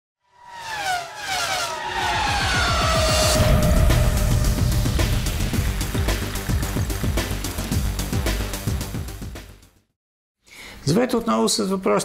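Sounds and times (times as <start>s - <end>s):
racing car passing at speed: 0.2s - 7.6s.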